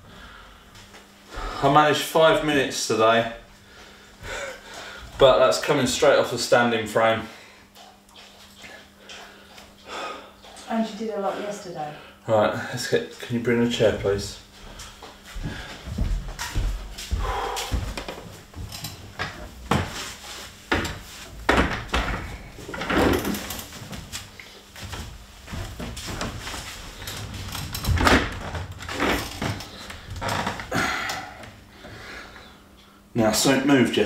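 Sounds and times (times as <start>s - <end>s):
office chair knocks and clunks: 17.7s - 20.1s, 20.7s - 24.2s, 24.8s - 30.7s.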